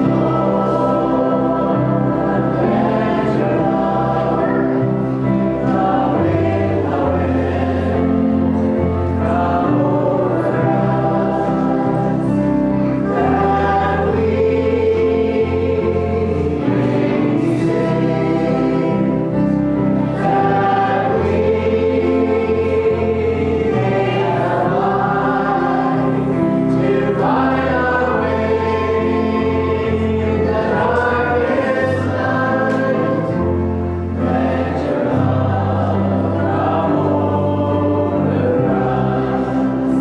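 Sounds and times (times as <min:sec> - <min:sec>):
congregation singing a hymn: 0:00.0 - 0:40.0
keyboard: 0:00.0 - 0:40.0.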